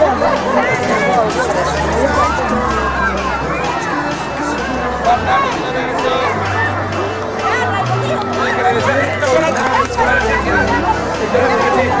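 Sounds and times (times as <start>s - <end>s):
background music: 0.0s - 12.0s
crowd chattering and calling out: 0.0s - 12.0s.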